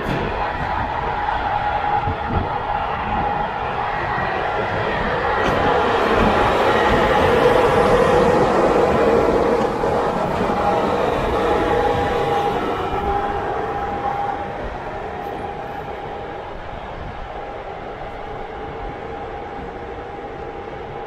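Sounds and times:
electric locomotive passing: 0.0s - 21.0s.

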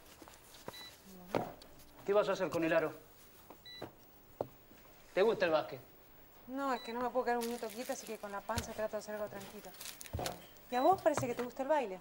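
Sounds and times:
groceries clicking and knocking: 7.6s - 11.6s
barcode scanner beep: 10.7s - 11.6s.

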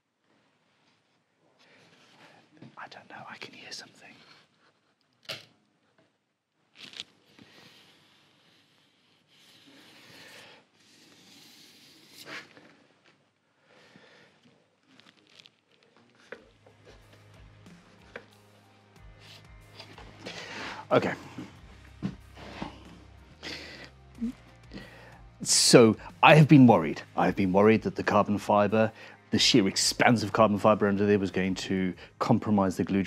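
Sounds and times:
quiet background music: 0.4s - 33.0s.

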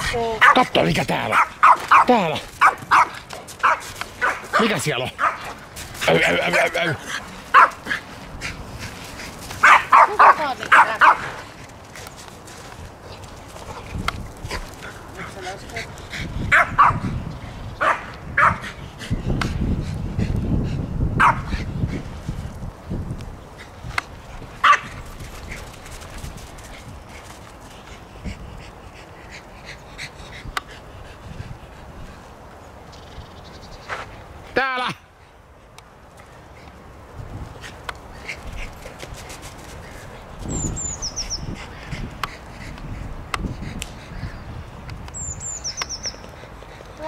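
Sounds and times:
dogs barking and yipping: 0.4s - 11.6s, 16.5s - 17.2s, 17.8s - 18.8s, 21.2s - 21.7s, 24.4s - 26.0s.

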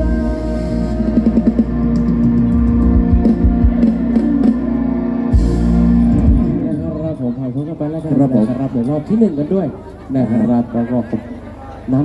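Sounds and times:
drums: 0.0s - 7.1s
bass line: 0.0s - 7.4s.

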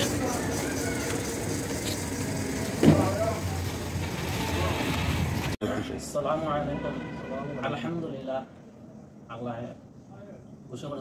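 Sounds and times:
people's voices: 0.0s - 7.5s.

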